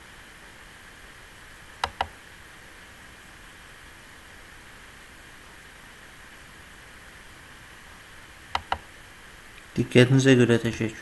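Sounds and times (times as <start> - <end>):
low background hiss: 0.0 - 11.0
computer mouse click: 1.8 - 2.2, 8.5 - 8.9.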